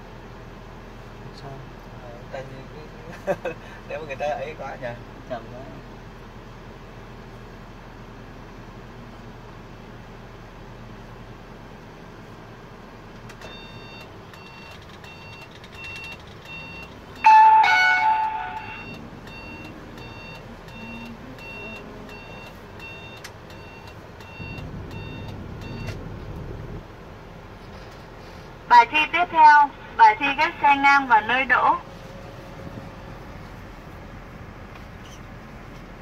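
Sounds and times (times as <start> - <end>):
car cabin noise: 13.0 - 36.0
repeating electronic beep: 13.6 - 26.0
loud tonal horn blare: 17.2 - 18.9.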